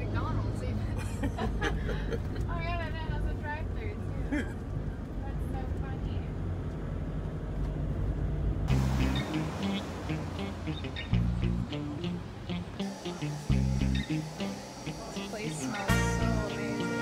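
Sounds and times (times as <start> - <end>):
engine and road rumble in car: 0.0 - 12.8
music: 8.7 - 17.0.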